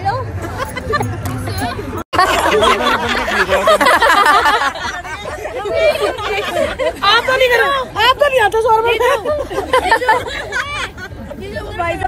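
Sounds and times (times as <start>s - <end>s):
many voices chattering: 0.0s - 12.0s.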